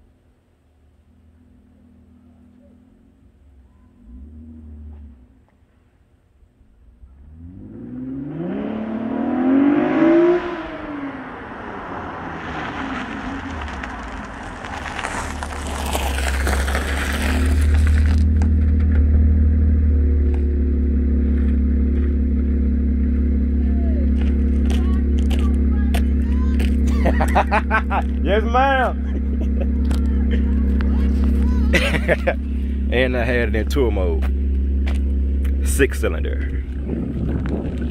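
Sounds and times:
car engine idling: 0.0s - 7.3s, 10.6s - 37.9s
car engine revving: 1.1s - 5.4s, 6.6s - 37.9s
tyres spinning on gravel: 12.2s - 19.2s, 24.0s - 37.9s.

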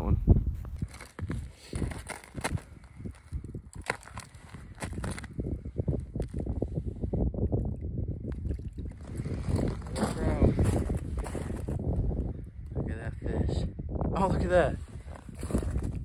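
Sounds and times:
scraping on ice: 0.8s - 5.4s.

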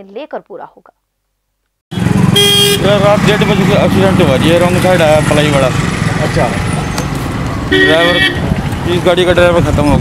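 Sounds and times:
highway traffic rumble: 1.9s - 10.0s.

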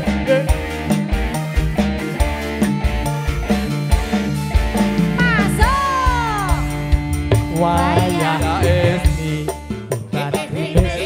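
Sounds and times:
bass: 0.0s - 11.0s
drum strokes: 0.0s - 11.0s
live band music: 0.0s - 11.0s
woman singing: 5.2s - 6.8s, 7.5s - 9.4s.

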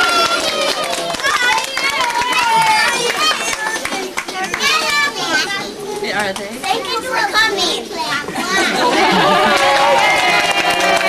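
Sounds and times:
young children chattering: 0.0s - 9.5s.

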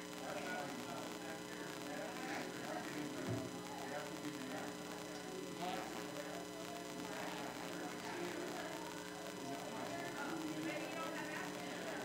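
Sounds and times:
electrical mains hum: 0.0s - 12.0s
faint indistinct voices: 0.0s - 12.0s.

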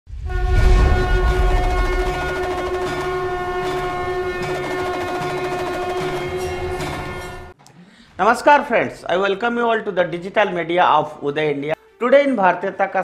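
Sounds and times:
conch shell horn note: 0.1s - 7.6s.

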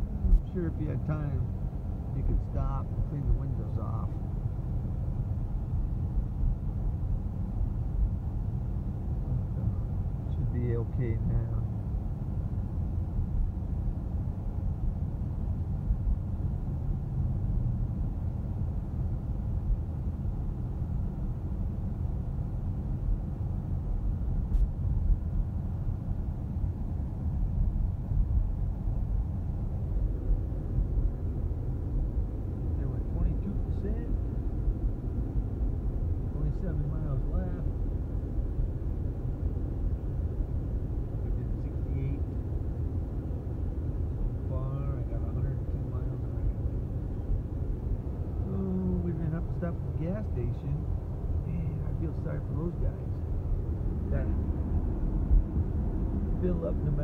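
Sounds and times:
tyre and road noise in car cabin: 0.0s - 57.0s.

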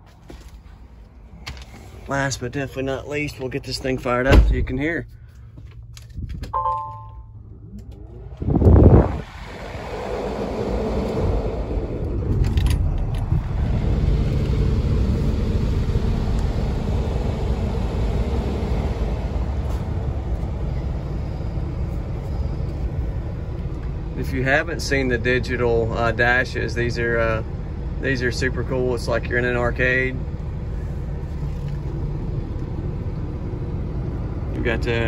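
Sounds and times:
diesel engine cranking and idling: 0.0s - 6.5s, 7.2s - 35.0s
short electronic beep: 6.6s - 7.3s.

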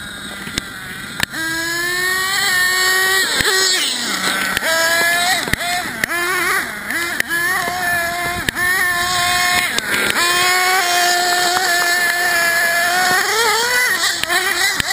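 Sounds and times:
small engine revving high: 0.0s - 14.9s.

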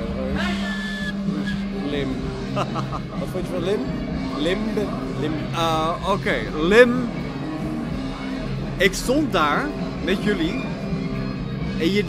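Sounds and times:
background music: 0.0s - 12.0s
man whistling high note: 0.4s - 1.8s.

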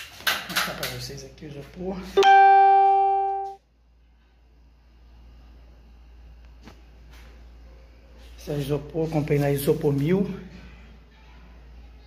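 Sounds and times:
sustained ringing musical note: 2.2s - 3.6s.

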